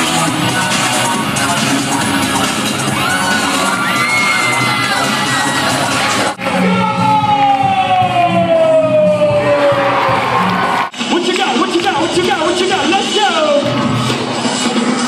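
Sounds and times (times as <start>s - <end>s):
loud music: 0.0s - 15.0s
crowd cheering and whooping: 2.8s - 10.9s.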